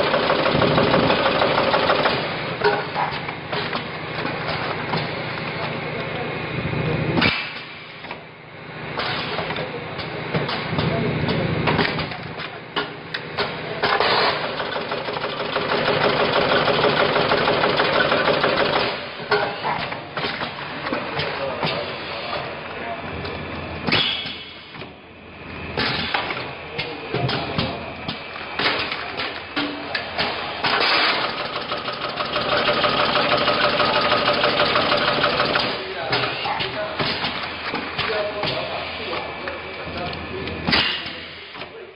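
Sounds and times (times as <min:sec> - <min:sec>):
bagging machine rattling: 0:00.0 - 0:04.7, 0:13.8 - 0:19.1, 0:30.0 - 0:38.8.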